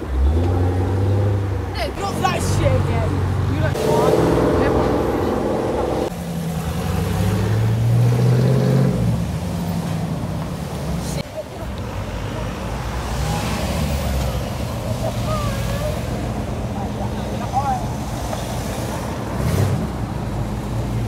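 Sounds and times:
car accelerating: 0.0 - 21.0
car engines pulling away: 0.0 - 21.0.

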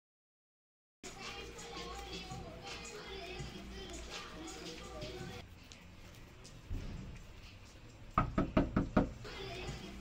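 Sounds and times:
fist knocking on door: 8.2 - 9.2.

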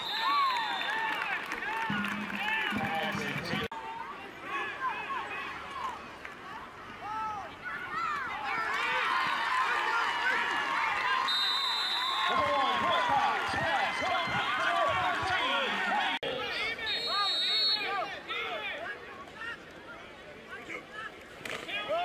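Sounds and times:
referee's whistle blast: 0.0 - 1.0, 11.3 - 12.5, 16.8 - 18.0
crowd yelling and cheering: 0.0 - 19.7.

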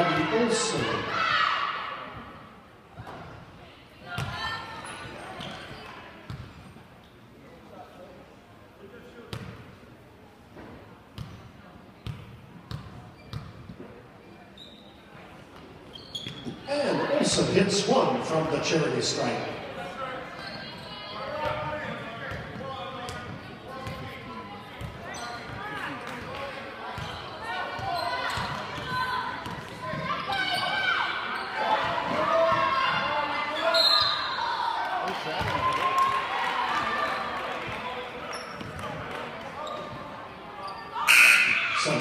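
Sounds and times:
players and crowd voices: 0.0 - 42.0.

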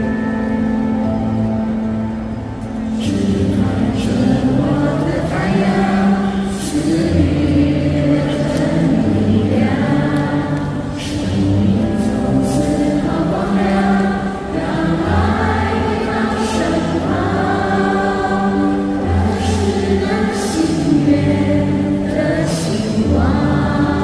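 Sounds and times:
women singing together: 3.6 - 24.0.

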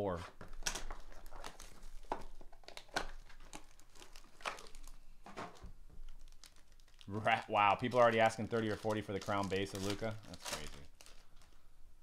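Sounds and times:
foil wrapper crinkling and tearing: 0.4 - 5.1, 6.0 - 11.6.

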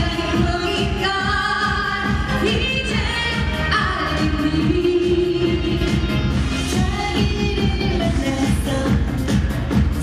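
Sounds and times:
women singing into microphones: 0.0 - 9.4
backing music with steady beat: 0.0 - 10.0.

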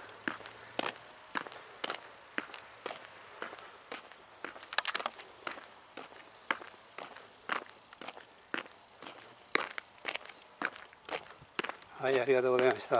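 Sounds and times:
footsteps walking: 0.0 - 12.9.

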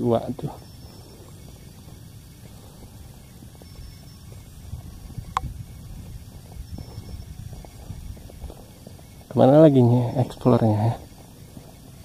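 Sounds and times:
wind rumble on microphone: 0.2 - 12.0.

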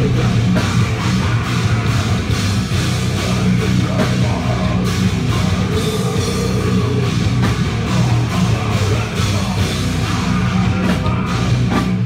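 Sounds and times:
distorted electric guitars: 0.0 - 12.0
heavy metal band playing: 0.0 - 12.0
steady drum beat: 0.0 - 12.0.

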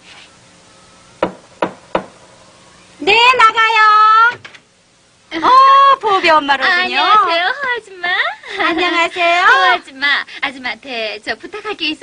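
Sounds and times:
knocking on a door: 1.2 - 2.2.

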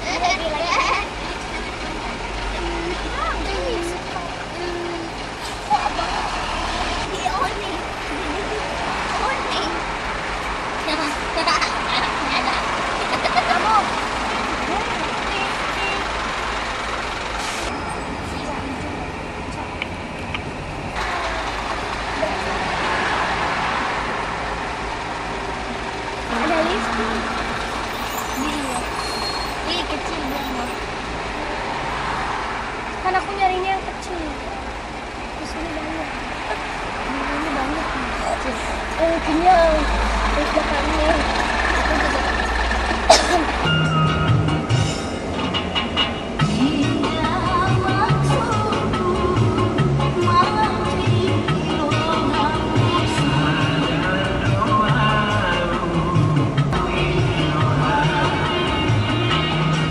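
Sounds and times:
faint voices: 0.0 - 16.2
car engine and road rumble: 0.0 - 59.9
indistinct voices: 0.0 - 59.9.

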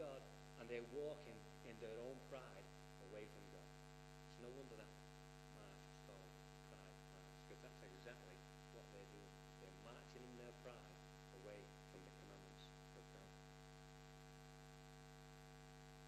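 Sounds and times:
faint indistinct voices: 0.0 - 3.6, 4.3 - 4.9, 5.6 - 13.3
electrical mains hum: 0.0 - 16.0.

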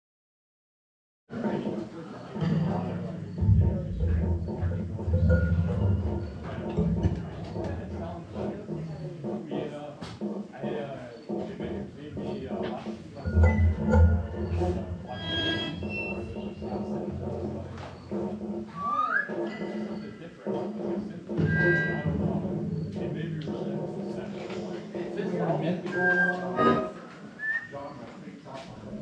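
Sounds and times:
low bass swells: 2.7 - 8.2, 13.3 - 18.0
electronic clicks and bleeps: 13.3 - 17.2.

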